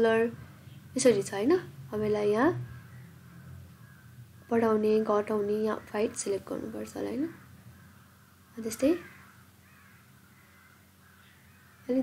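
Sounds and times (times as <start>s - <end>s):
woman speaking: 0.0s - 2.6s, 4.5s - 7.4s, 8.6s - 9.1s
faint room hum: 0.0s - 12.0s.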